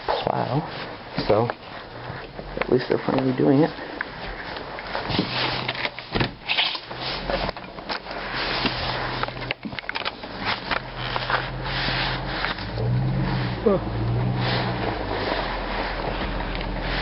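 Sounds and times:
cloth rubbing on microphone: 8.2 - 9.2, 10.4 - 13.6, 14.2 - 17.0.

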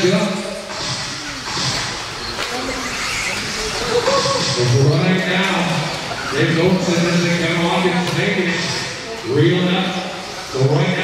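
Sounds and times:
echoing voices: 0.0 - 11.0.

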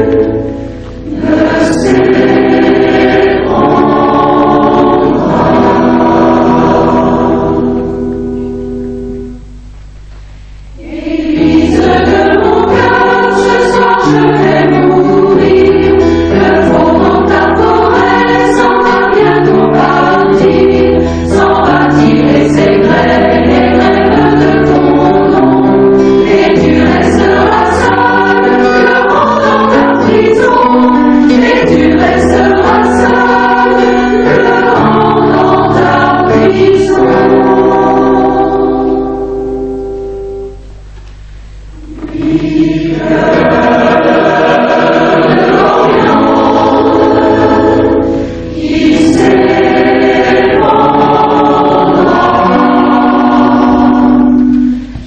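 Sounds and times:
choir singing in chords: 0.0 - 9.4, 10.6 - 40.7, 41.3 - 55.0.

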